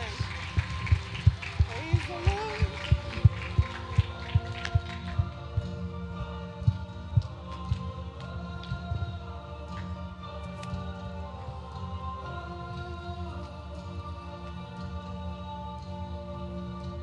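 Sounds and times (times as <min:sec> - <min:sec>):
kick drum beating: 0:00.5 - 0:05.8.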